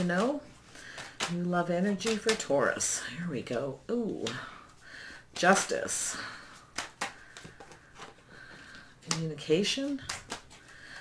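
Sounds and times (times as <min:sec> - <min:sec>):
cards rustling: 0:00.0 - 0:11.0.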